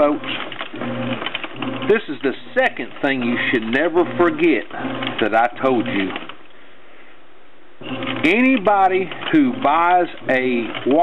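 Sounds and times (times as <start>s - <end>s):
washing machine running: 0.0s - 6.2s, 7.8s - 11.0s.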